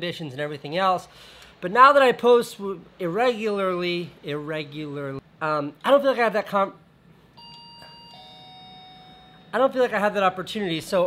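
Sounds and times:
two-note electronic chime: 0:07.4 - 0:09.6.

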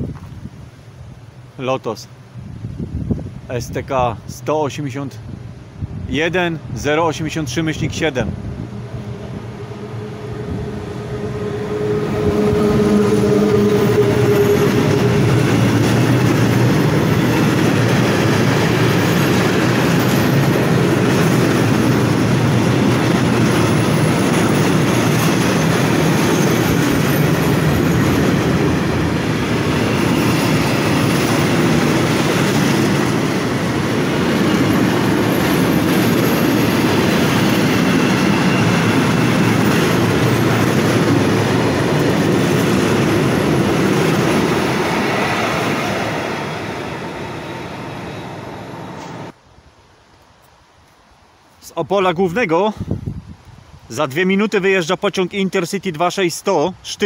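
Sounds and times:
electric locomotive humming: 0:05.2 - 0:49.4
train wheels clattering on rails: 0:12.2 - 0:46.6.

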